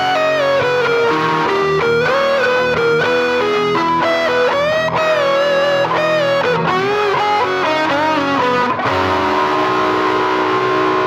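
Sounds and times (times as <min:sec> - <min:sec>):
distorted electric guitar sustained note: 0:00.0 - 0:11.0.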